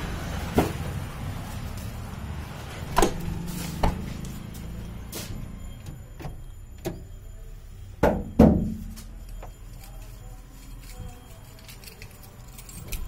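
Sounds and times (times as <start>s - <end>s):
knocks on car door and body: 8.0s - 8.8s.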